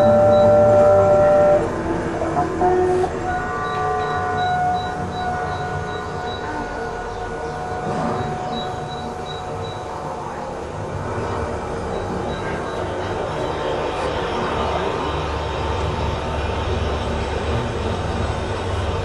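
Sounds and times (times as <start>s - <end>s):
thin high tones: 0.0s - 10.1s
faint high pulsing: 0.0s - 18.7s
steady rumbling noise: 0.0s - 19.0s.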